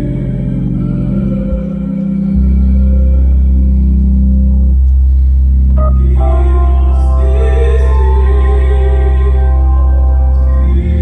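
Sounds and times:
electric organ sustained chord: 0:00.0 - 0:11.0.

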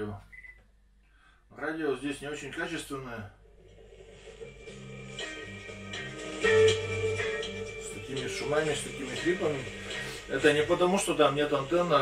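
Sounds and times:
music from a radio: 0:03.8 - 0:12.0.

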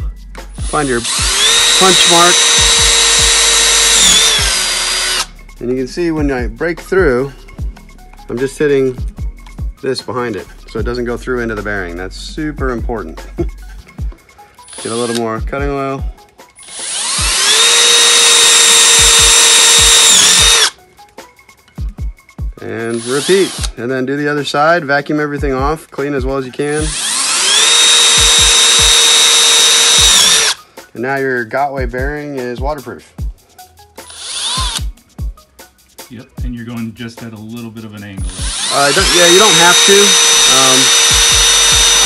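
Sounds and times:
cordless drill drilling into metal: 0:00.6 - 0:05.3, 0:14.7 - 0:15.3, 0:16.6 - 0:20.8, 0:22.9 - 0:23.8, 0:26.8 - 0:30.6, 0:34.0 - 0:34.9, 0:38.2 - 0:42.0.

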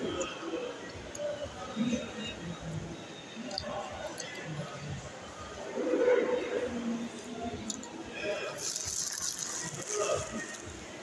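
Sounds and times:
paper wrapper rustling: 0:08.6 - 0:10.7.

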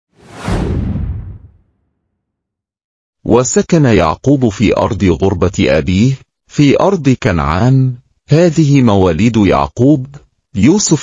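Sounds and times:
whoosh sound effect: 0:00.1 - 0:01.9
deep rumble: 0:00.2 - 0:01.7.

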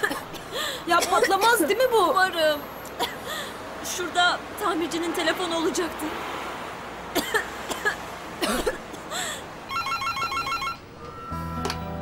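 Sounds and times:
electronic telephone ringer trilling: 0:09.7 - 0:11.3.

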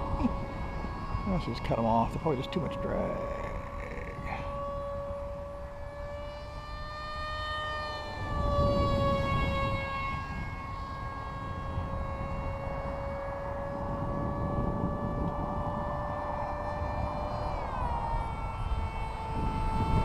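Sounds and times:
small electric motor whining: 0:00.0 - 0:20.0
wind rumble on microphone: 0:00.0 - 0:20.0.

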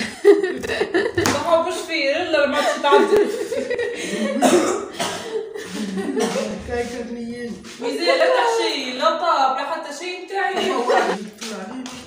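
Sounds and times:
person coughing: 0:04.3 - 0:05.5, 0:06.1 - 0:06.6
low voices: 0:05.5 - 0:12.0.

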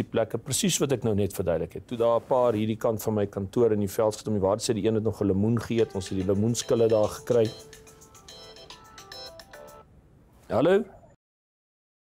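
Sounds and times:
mobile phone ringtone melody: 0:05.8 - 0:09.8.

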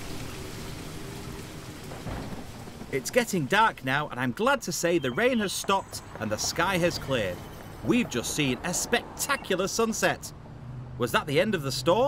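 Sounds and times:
low rumble of thunder: 0:00.0 - 0:03.7
heavy rain downpour: 0:00.0 - 0:04.8.

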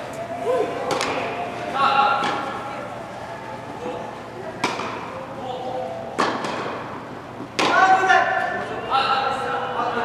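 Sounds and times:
tennis ball striking racket: 0:02.2 - 0:02.6, 0:04.6 - 0:05.1, 0:06.2 - 0:07.9.

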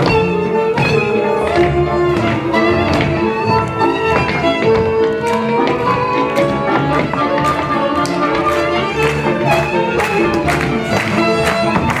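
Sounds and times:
folk dance band with fiddle: 0:00.0 - 0:12.0.

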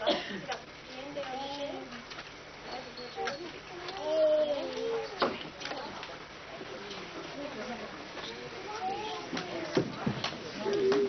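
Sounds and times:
children's voices: 0:00.9 - 0:02.1, 0:03.1 - 0:06.1, 0:08.4 - 0:11.0.

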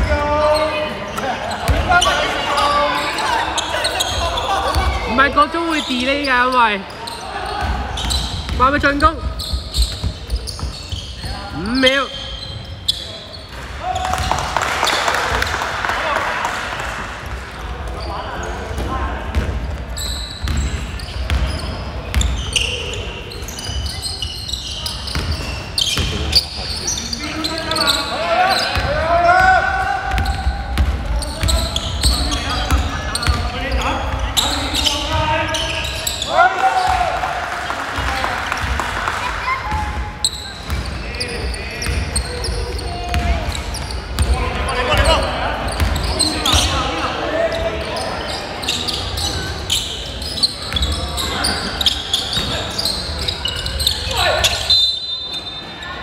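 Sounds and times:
players calling out: 0:00.0 - 0:16.8.

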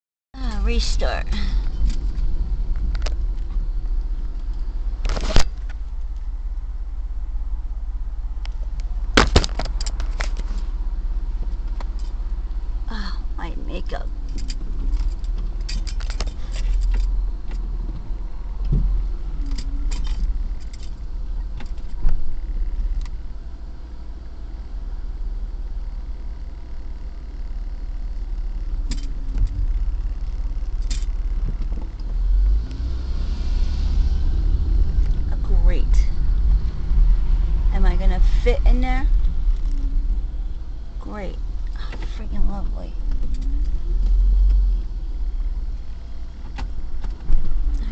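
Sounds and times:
car engine rumble: 0:00.4 - 0:47.9.

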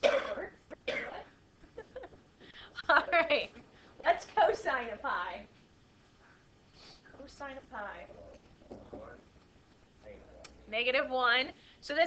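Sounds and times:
person clearing throat: 0:00.0 - 0:01.3.

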